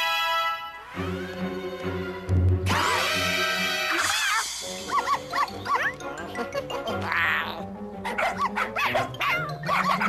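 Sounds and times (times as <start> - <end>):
background music: 0.0 - 10.0
cartoon cat vocalising: 3.9 - 7.8.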